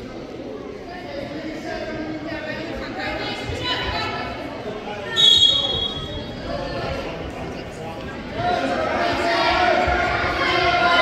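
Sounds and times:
gym chatter: 0.0s - 11.0s
shrill whistle blast: 5.2s - 6.3s.

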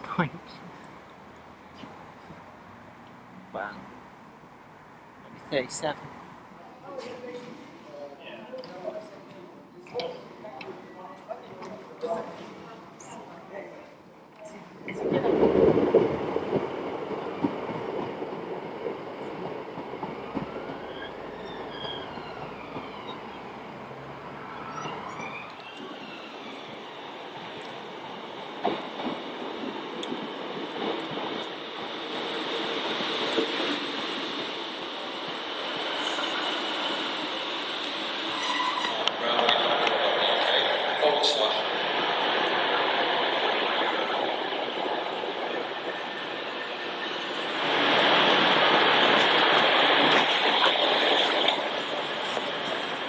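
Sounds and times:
train arriving at platform: 0.0s - 53.0s.

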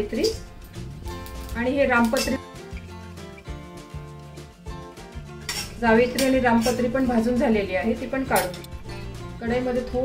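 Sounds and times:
metal spatula scraping metal pan: 5.4s - 7.3s.

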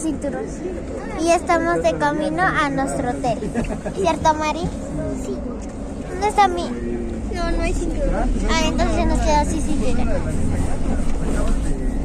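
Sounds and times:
bus engine rumble: 0.0s - 12.0s
road noise: 0.0s - 12.0s.

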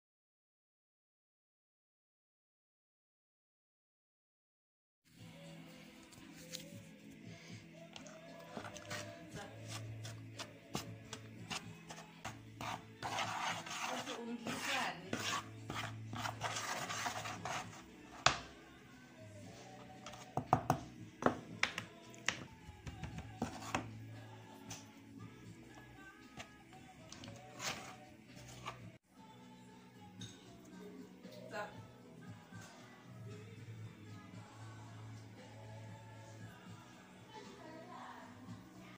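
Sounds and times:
soft background music: 5.1s - 38.9s
spoon scraping in bowl: 8.0s - 18.3s, 26.3s - 29.0s.

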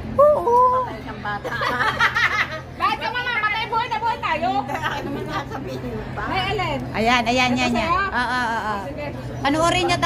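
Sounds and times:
people talking: 0.2s - 10.0s.

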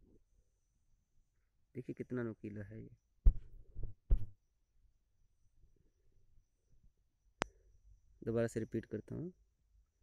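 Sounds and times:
dull low thumps: 3.2s - 4.4s.

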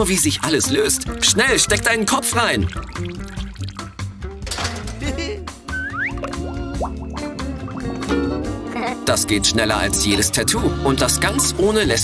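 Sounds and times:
cheerful background music: 0.0s - 12.0s
water bubbling and gargling in a bowl: 1.7s - 4.0s, 6.0s - 8.1s.

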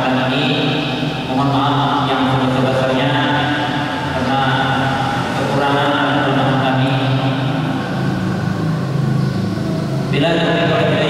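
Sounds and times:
man chanting: 0.0s - 7.8s, 10.1s - 11.0s.

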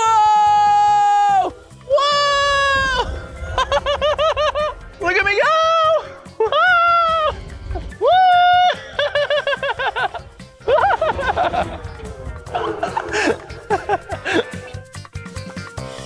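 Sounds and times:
rapid laughter: 3.3s - 5.0s, 8.5s - 14.8s.

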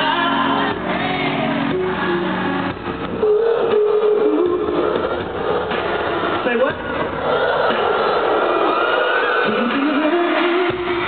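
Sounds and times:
crowd screaming: 0.0s - 11.0s.

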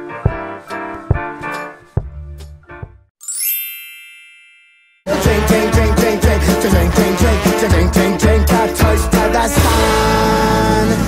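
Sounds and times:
bright chime shimmer: 3.2s - 5.0s.

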